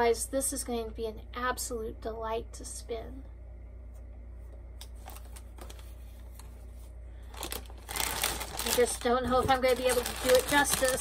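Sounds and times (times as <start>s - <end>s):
steady low hum: 0.0s - 11.0s
plastic bag crinkling and rustling: 5.0s - 11.0s.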